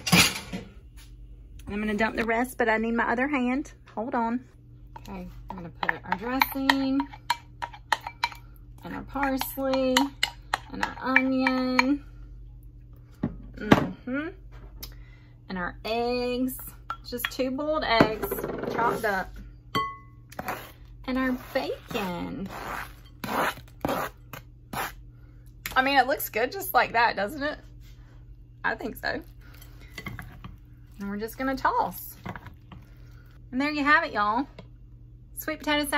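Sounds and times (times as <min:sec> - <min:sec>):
spoon scraping ceramic bowl: 0:20.3 - 0:24.1.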